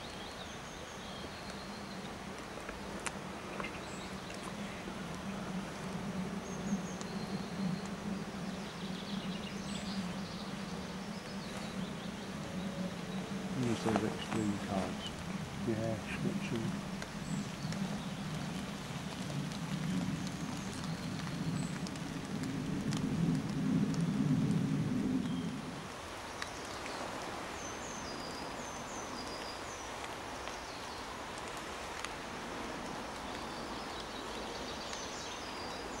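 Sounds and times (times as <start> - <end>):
steady hiss: 0.0 - 25.0.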